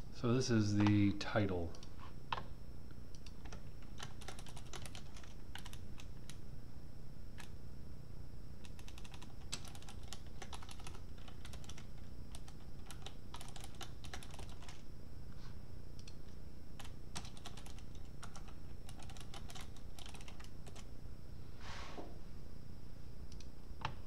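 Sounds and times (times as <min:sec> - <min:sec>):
computer keyboard typing: 0:03.1 - 0:06.4, 0:07.4 - 0:07.6, 0:08.6 - 0:14.8, 0:16.8 - 0:20.9.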